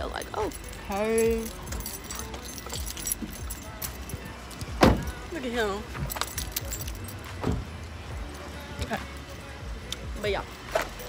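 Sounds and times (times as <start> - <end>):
metal items jangling: 0.0 - 11.0.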